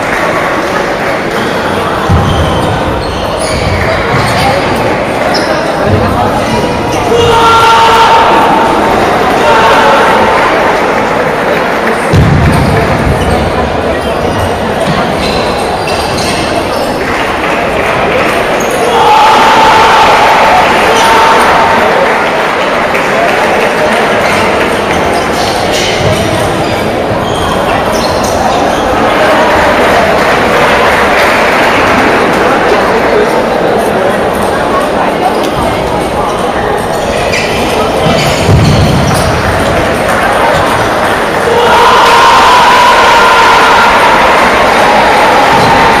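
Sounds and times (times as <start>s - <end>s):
crowd cheering and shouting: 0.0s - 34.1s, 37.1s - 46.0s
voices and chatter echoing: 0.0s - 46.0s.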